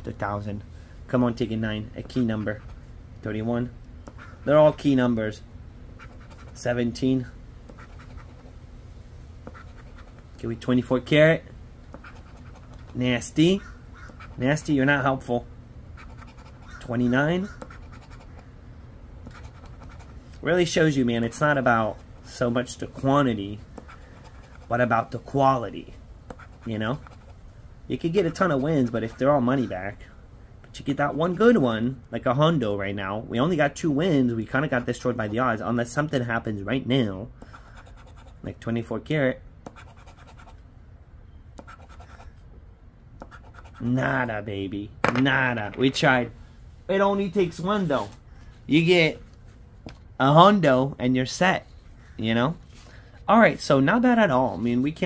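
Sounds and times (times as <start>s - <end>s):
chip scraping scratch-off ticket: 6.0s - 6.7s, 7.7s - 8.5s, 9.4s - 10.3s, 11.9s - 14.7s, 16.0s - 18.5s, 19.3s - 20.2s, 21.8s - 25.2s, 26.3s - 27.4s, 39.7s - 40.6s, 41.6s - 42.4s, 43.2s - 44.0s.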